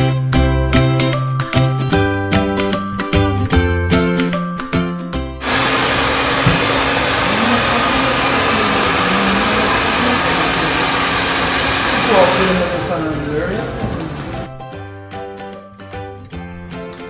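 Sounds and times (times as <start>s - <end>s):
hair dryer blowing: 5.4s - 14.5s.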